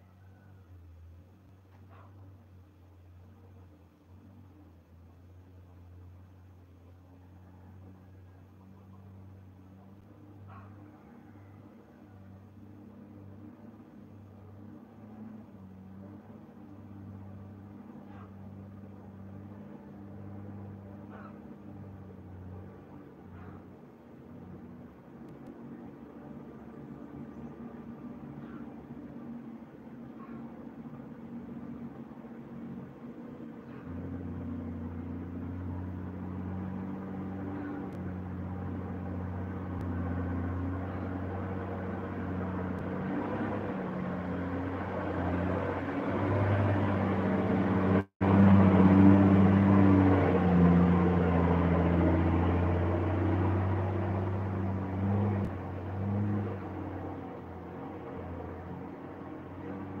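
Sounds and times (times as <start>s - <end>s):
motor hum: 16.4s - 60.0s.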